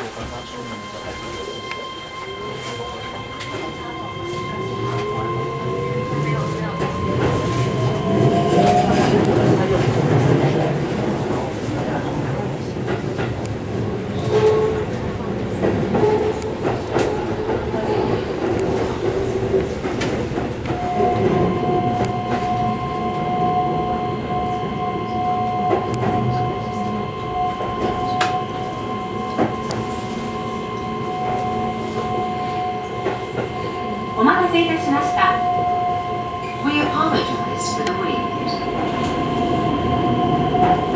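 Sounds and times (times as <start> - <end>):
rail clicks: 0.1 - 40.9
electric train motor whine: 20.6 - 40.9.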